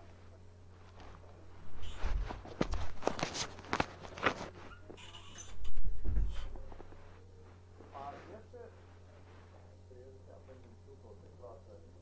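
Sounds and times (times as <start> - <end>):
footsteps on hard floor: 1.0 - 4.6.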